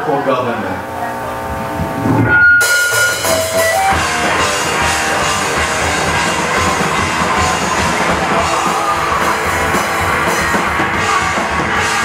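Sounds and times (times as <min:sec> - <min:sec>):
distorted electric guitar: 0:00.8 - 0:12.0
drum kit: 0:01.5 - 0:12.0
live heavy rock band: 0:01.8 - 0:12.0.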